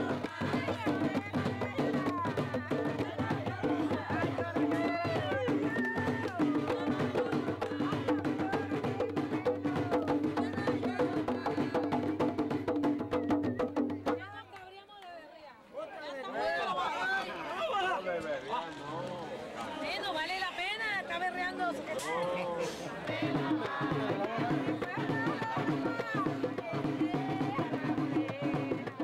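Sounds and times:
drums beating fast rhythm: 0:00.0 - 0:14.4, 0:23.0 - 0:29.0
voices singing: 0:00.0 - 0:14.5, 0:20.6 - 0:29.0.

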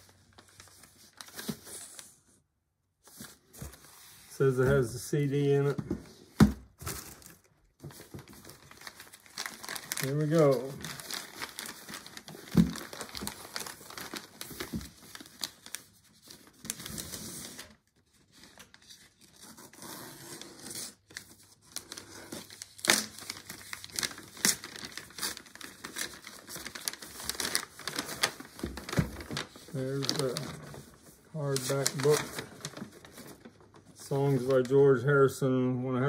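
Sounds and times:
paper tearing and crumpling: 0:08.3 - 0:34.7.

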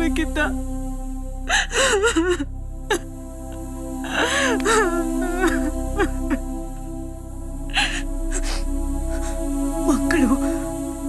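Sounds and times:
background music with held notes: 0:00.0 - 0:11.0
woman sobbing: 0:01.5 - 0:03.0, 0:04.1 - 0:06.4, 0:07.7 - 0:10.6.

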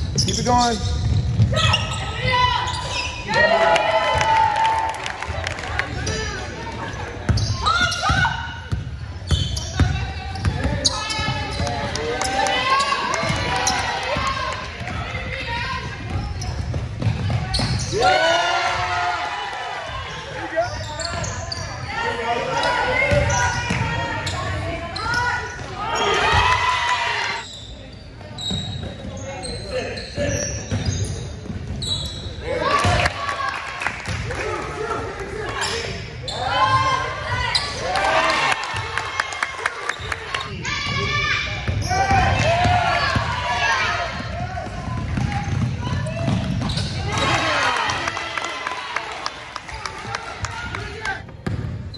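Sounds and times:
sneaker squeaks: 0:00.0 - 0:03.4, 0:06.0 - 0:18.2, 0:19.9 - 0:26.6, 0:27.4 - 0:32.9, 0:35.6 - 0:37.9, 0:44.0 - 0:47.6
basketball bouncing on wooden floor: 0:44.2 - 0:47.0.

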